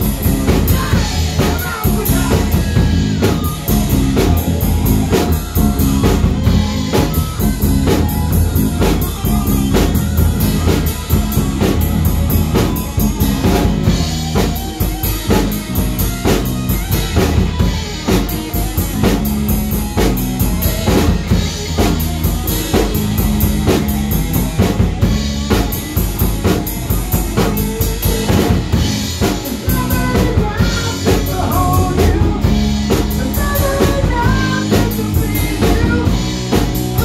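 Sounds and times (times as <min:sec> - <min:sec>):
drum kit beat: 0:00.0 - 0:37.0
electric guitar: 0:00.0 - 0:37.0
rock band playing: 0:00.0 - 0:37.0.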